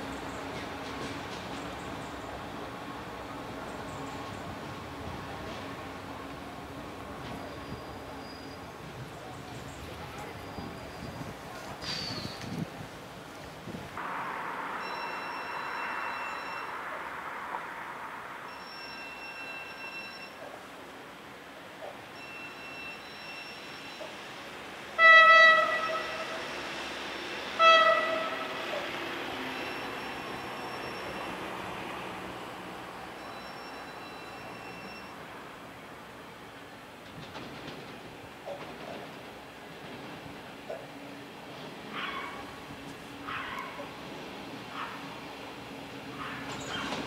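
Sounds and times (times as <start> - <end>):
train horn blasts: 24.9 - 26.6, 27.5 - 28.7.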